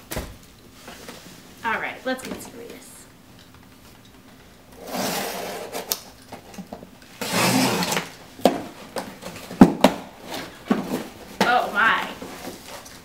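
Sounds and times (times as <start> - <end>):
box cutter slicing tape: 4.8 - 6.0, 7.2 - 8.2.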